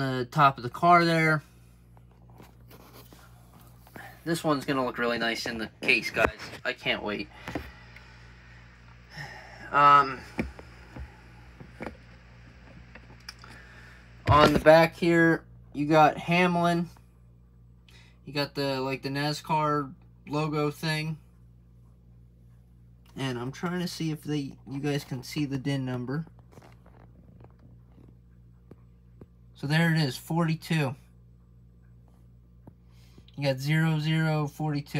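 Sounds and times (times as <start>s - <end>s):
steady low hum: 0.0s - 34.9s.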